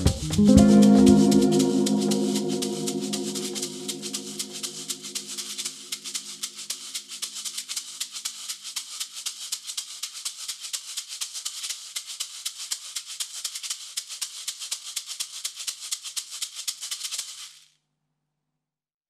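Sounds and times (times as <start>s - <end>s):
held notes: 0.0s - 6.4s
shaker rattling: 0.0s - 17.8s
faint low drone: 0.4s - 6.0s.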